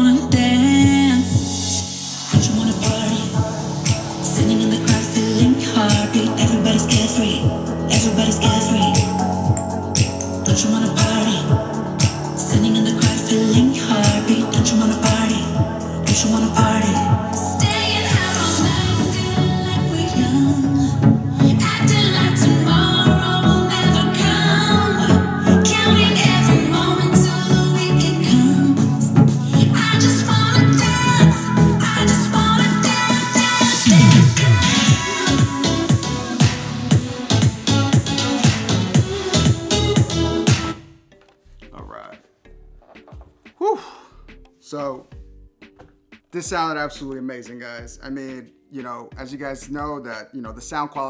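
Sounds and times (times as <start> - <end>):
pop song with singing: 0.0 - 40.8, 42.9 - 51.0.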